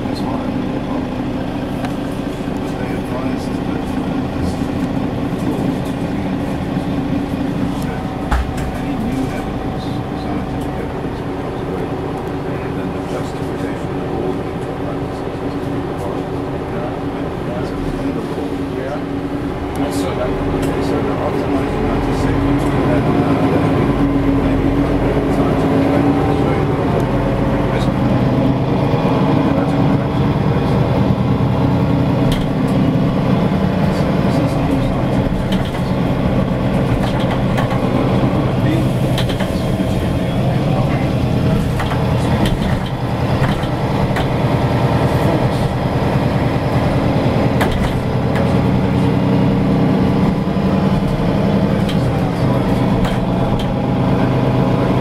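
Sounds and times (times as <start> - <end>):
road noise: 0.0 - 55.0
transit vehicle drive hum: 0.0 - 55.0.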